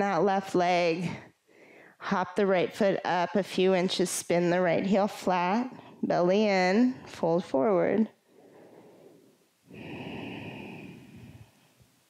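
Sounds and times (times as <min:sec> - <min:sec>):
woman breathing out: 0:08.3 - 0:11.8.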